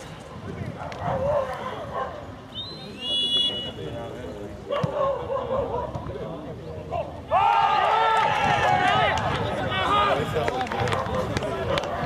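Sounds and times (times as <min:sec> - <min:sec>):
people shouting and cheering: 0:06.9 - 0:12.0.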